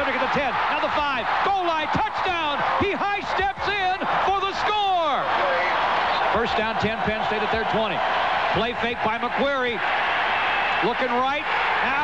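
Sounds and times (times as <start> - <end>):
excited commentator voice: 0.0 - 10.0, 10.7 - 12.0
stadium crowd noise: 0.0 - 12.0.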